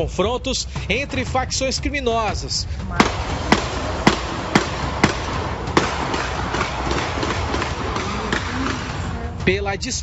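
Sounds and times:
sharp cracks: 3.0s - 9.2s
loud rushing noise: 3.0s - 9.3s.

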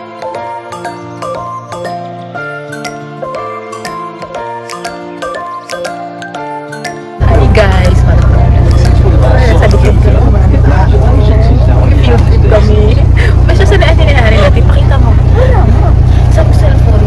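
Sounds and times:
voices chattering: 7.2s - 17.0s
bus engine and road rumble: 7.3s - 17.0s.

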